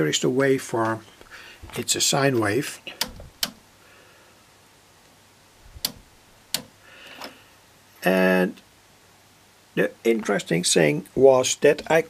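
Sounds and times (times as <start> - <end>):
rotary switch knob clicks: 3.0 - 3.6, 5.8 - 6.7.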